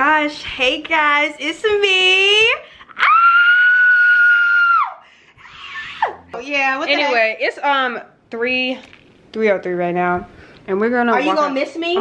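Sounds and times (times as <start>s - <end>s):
woman screaming: 3.0s - 5.0s.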